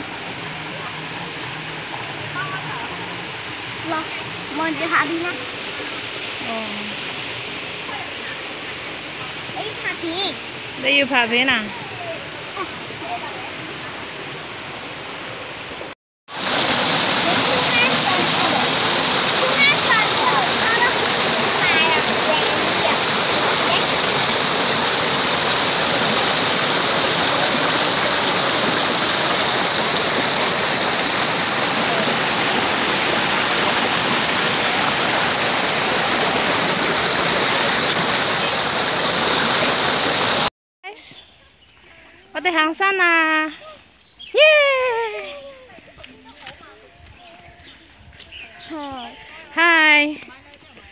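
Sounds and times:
waterfall rushing over rocks: 0.0 - 40.5.

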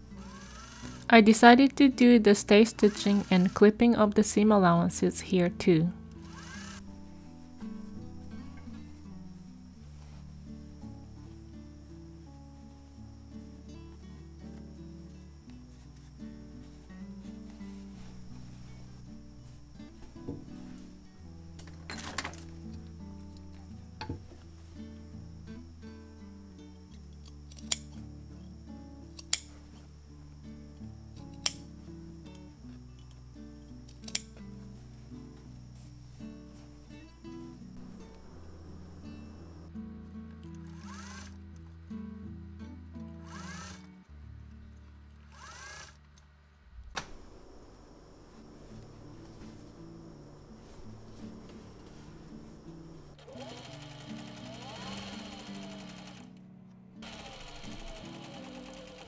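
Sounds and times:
soft background music: 0.0 - 59.0
cloth rustling: 15.7 - 22.6, 46.7 - 53.1
scissors snipping: 29.2 - 29.5.

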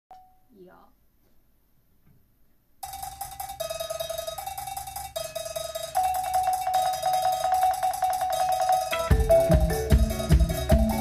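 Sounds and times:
high note struck rapidly: 2.8 - 11.0.

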